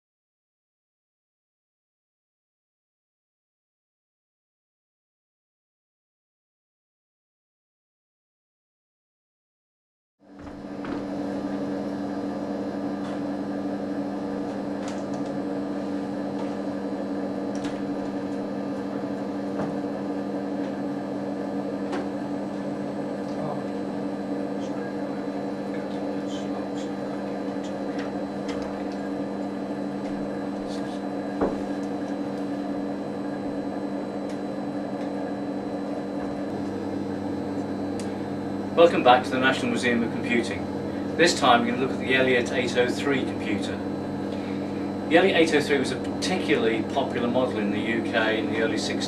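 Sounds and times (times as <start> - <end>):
computer fan noise: 10.3 - 49.0
low electrical hum: 10.3 - 49.0.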